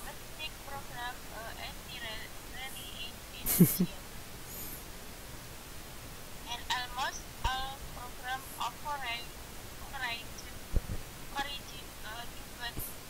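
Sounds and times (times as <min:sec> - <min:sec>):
person reading aloud: 0:00.0 - 0:04.0, 0:06.5 - 0:09.2, 0:11.4 - 0:13.0
steady hiss: 0:00.0 - 0:13.0.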